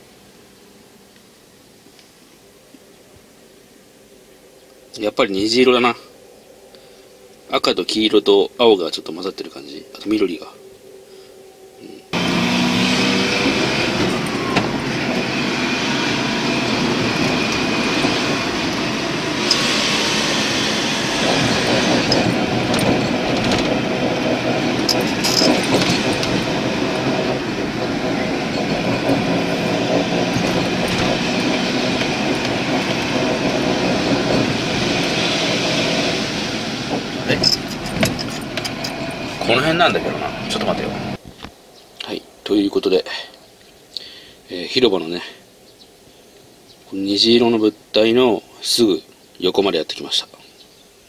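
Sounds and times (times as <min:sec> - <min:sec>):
car engine and road noise: 0:12.1 - 0:42.4.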